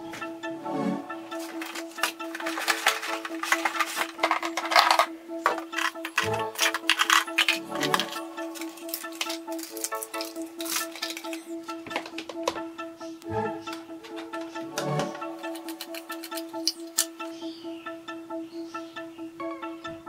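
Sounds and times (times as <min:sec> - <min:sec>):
background music with held note: 0:00.0 - 0:20.0
plastic toy pieces clattering: 0:01.3 - 0:12.6, 0:15.4 - 0:17.1.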